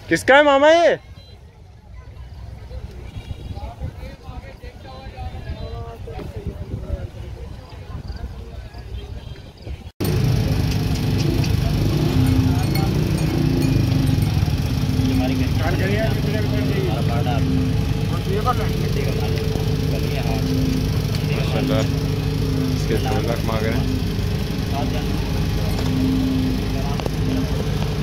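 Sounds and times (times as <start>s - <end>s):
people talking: 1.3s - 28.0s
engine-like drone: 10.0s - 28.0s.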